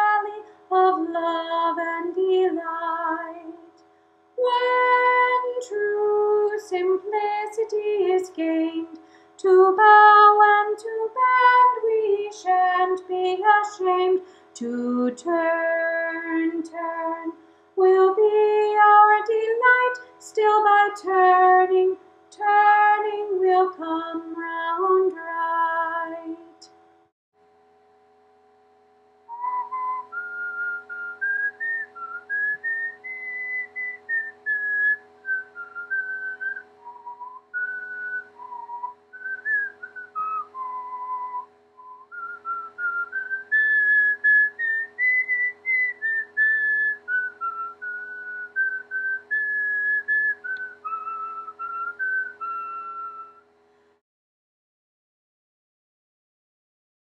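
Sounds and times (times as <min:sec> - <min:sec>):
faint steady hum: 0:00.0 - 0:54.0
person whistling a slow melody: 0:29.3 - 0:53.4.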